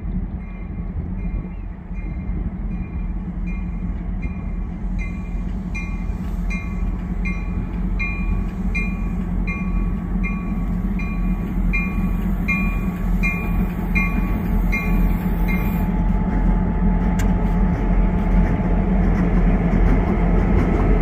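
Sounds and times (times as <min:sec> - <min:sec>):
diesel locomotive engines rumbling: 0:00.0 - 0:21.0.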